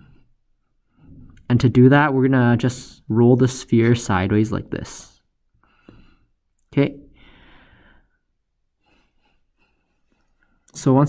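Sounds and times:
faint breath out: 7.1 - 8.2.

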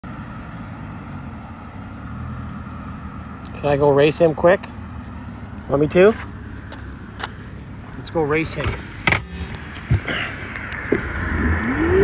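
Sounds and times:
car engine low rumble: 0.0 - 12.0.

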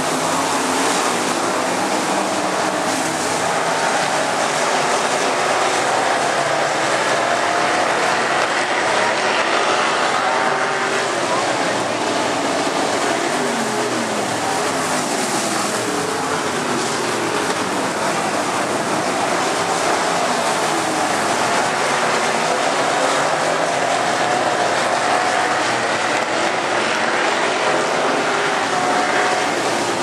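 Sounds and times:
race car engines: 0.0 - 30.0.

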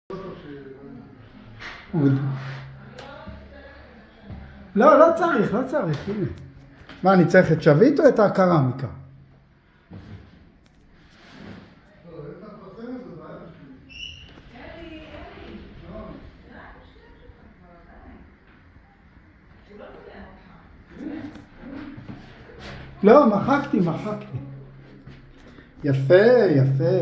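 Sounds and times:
steady low hum: 14.6 - 27.0.

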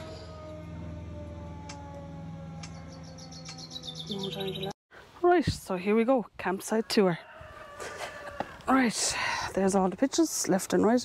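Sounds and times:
air-raid siren winding down: 0.0 - 4.7.

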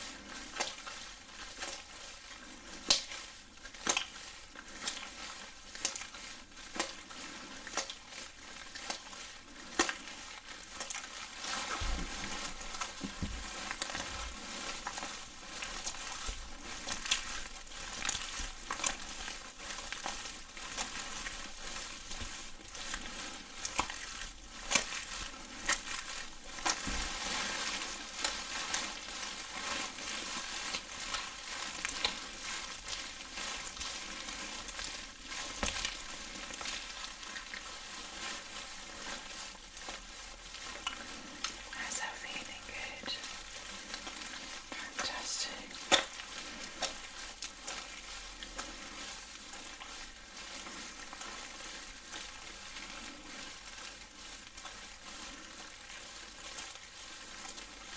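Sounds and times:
gloved hands squishing wetly: 0.0 - 57.9.

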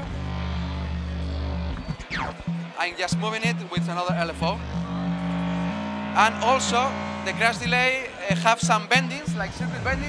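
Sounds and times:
low synthesizer drone: 0.0 - 2.8, 4.2 - 10.0.

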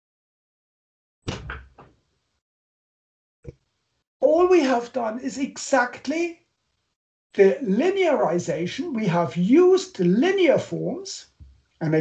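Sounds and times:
sudden thump: 1.2 - 1.9.

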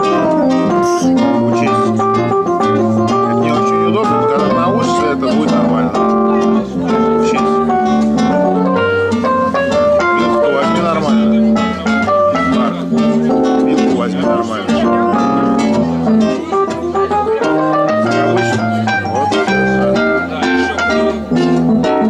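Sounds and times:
electric keyboard chords: 0.0 - 22.0
plucked acoustic guitar: 0.0 - 22.0.

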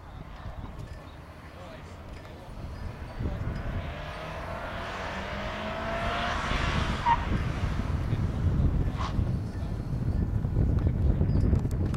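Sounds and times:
car engine revving: 0.0 - 10.2
wind rumble on microphone: 0.0 - 11.9.

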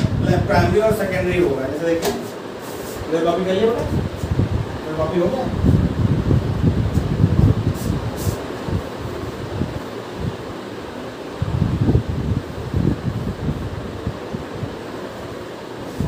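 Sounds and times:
low rumbling gusts: 0.0 - 15.8
fan-like whir: 0.0 - 16.0.

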